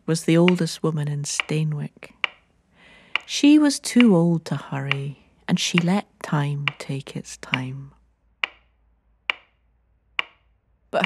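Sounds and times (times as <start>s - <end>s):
clock ticking: 0.2s - 11.0s.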